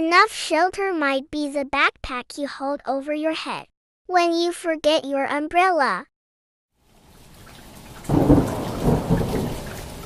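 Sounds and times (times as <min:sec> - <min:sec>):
rain: 0:06.8 - 0:10.0
thunder rumbling: 0:08.1 - 0:10.0.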